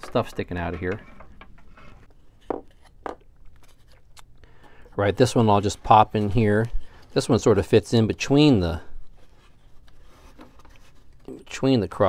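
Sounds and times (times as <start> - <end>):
handling taps and rubbing: 0.0 - 4.0.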